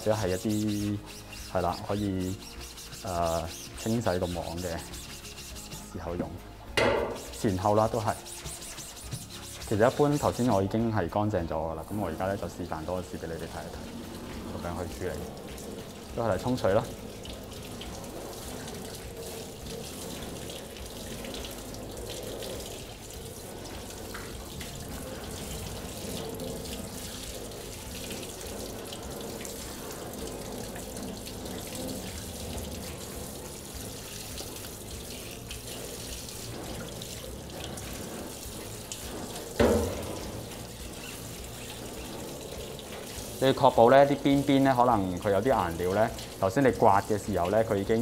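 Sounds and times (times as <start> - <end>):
faucet water splashing in sink: 0.0 - 48.0.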